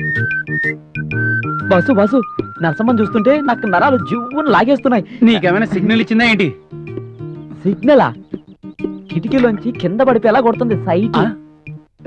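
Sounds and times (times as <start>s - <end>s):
background music: 0.0s - 12.0s
person speaking: 1.7s - 6.6s, 7.5s - 8.4s, 9.1s - 11.4s.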